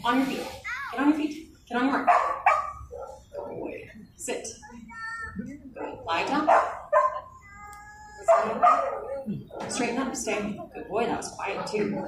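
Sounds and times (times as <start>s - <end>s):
dog barking: 2.0s - 3.7s, 5.8s - 7.3s, 8.2s - 9.8s
dog whining: 6.5s - 9.6s.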